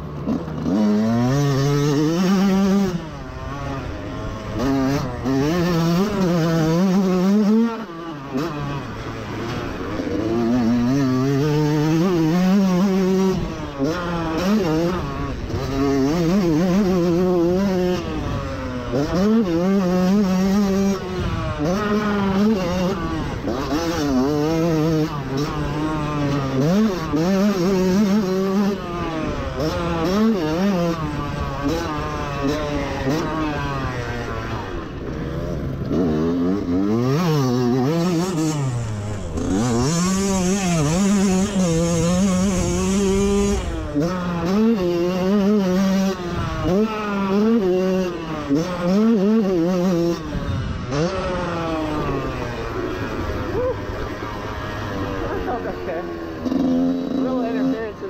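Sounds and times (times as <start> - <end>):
motocross bike engine revving: 0.0 - 58.0.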